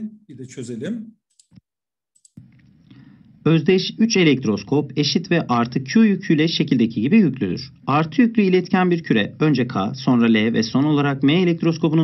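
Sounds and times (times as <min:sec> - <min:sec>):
computer mouse clicks: 0:01.3 - 0:02.8.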